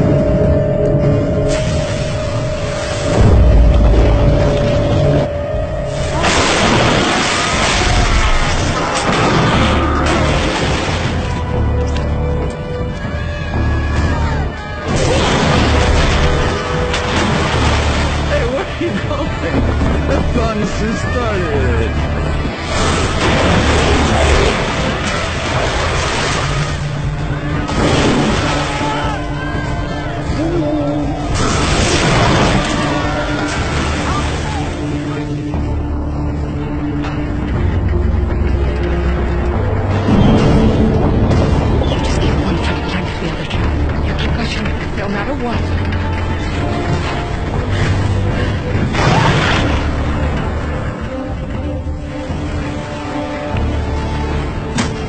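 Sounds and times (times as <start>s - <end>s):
sustained drone note: 0.0s - 7.3s
deep low rumble: 0.0s - 20.6s, 21.5s - 52.8s
rush of splashing water: 5.9s - 11.6s, 14.9s - 19.6s, 22.6s - 29.3s, 31.3s - 35.4s
voices shouting: 27.2s - 31.7s.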